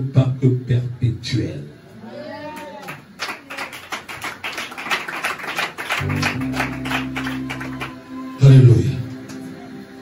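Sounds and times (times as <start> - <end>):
keyboard music: 6.0 - 10.0
low held chord: 6.0 - 10.0.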